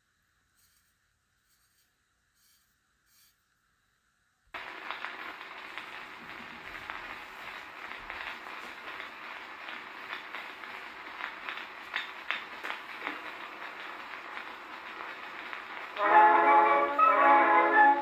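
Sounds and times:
record surface hiss and crackle: 0.0s - 18.0s.

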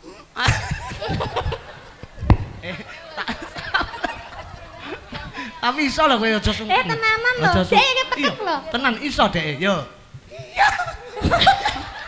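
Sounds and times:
people laughing: 0.4s - 9.1s, 10.3s - 12.0s.

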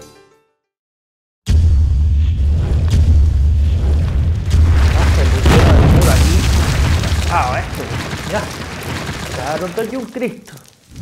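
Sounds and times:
stone cracking and crumbling rubble: 4.4s - 11.0s.

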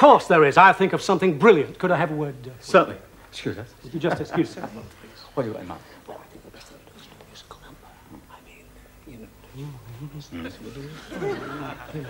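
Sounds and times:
men whispering: 2.6s - 12.0s.

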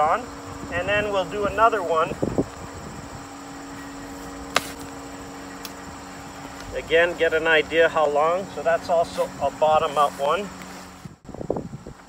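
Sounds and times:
insects chirring: 0.0s - 12.0s
low steady hum: 0.0s - 12.0s.

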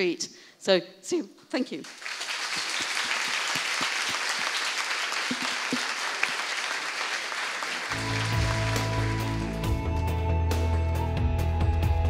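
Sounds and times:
audience applauding: 1.8s - 10.1s
music with held notes and low bass: 8.0s - 12.0s.

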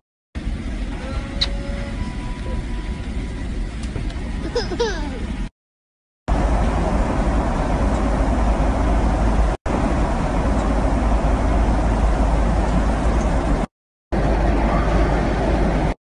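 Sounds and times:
airliner cabin rumble: 0.4s - 5.5s, 6.3s - 16.0s.

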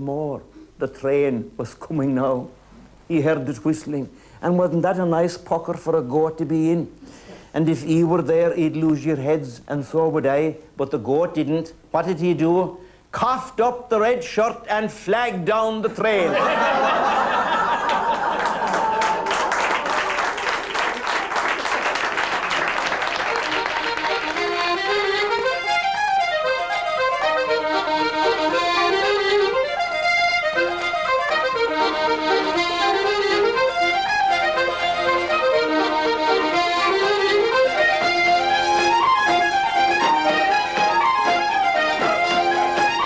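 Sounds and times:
audience applause: 17.3s - 24.5s
accordion dance tune: 21.4s - 43.0s.

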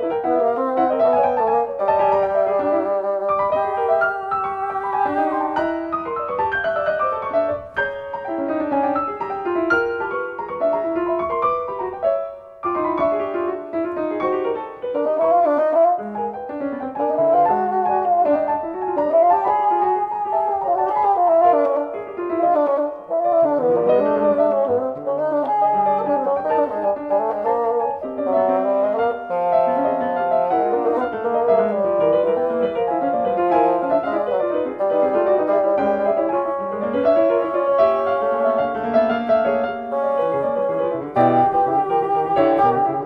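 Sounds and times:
bassoon: 0.0s - 43.0s
piano: 0.0s - 43.0s.

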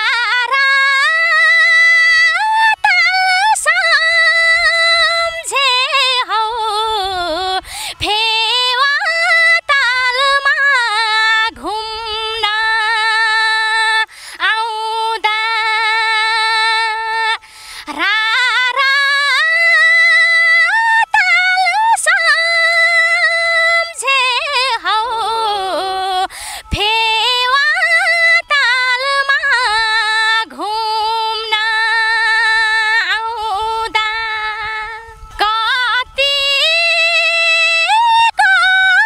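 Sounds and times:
woman singing a high note: 0.0s - 17.4s, 18.0s - 39.0s.

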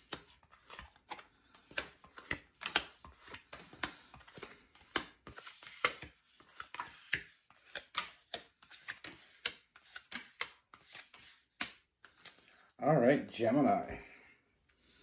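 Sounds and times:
cards shuffled by hand: 0.0s - 12.6s.

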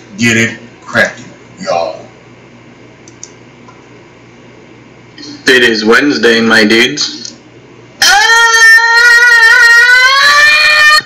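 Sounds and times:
man screaming: 8.0s - 11.0s.

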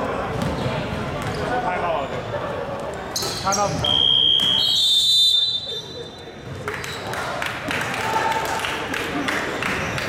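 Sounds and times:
referees' whistles blowing: 3.8s - 6.3s.

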